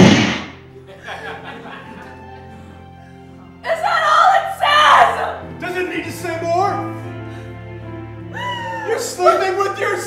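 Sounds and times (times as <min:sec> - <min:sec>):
low background music chord: 0:00.0 - 0:10.0
woman wailing: 0:03.6 - 0:05.4, 0:08.3 - 0:09.2.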